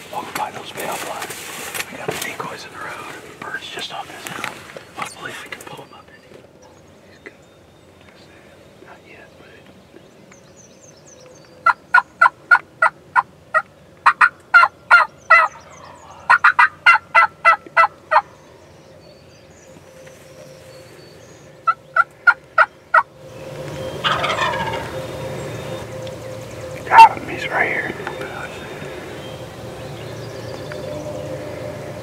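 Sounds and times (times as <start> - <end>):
wild turkey yelping: 11.6 - 18.4, 21.5 - 29.2.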